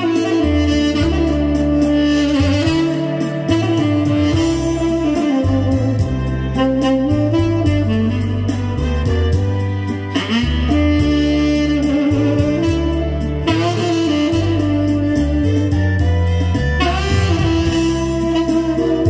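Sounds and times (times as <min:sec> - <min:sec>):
backing track of bass and drums: 0:00.0 - 0:19.0
tenor saxophone ballad melody: 0:00.0 - 0:19.0.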